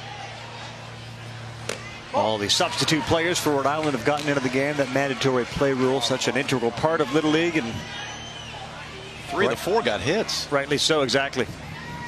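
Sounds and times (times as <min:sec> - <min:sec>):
stadium crowd ambience: 0:00.0 - 0:12.0
bat hitting baseball: 0:01.6 - 0:01.9.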